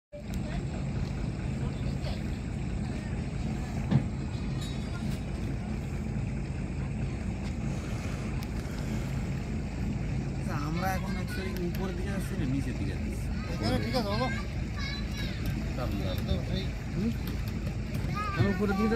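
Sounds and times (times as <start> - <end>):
boat engine droning: 0.1 - 18.9.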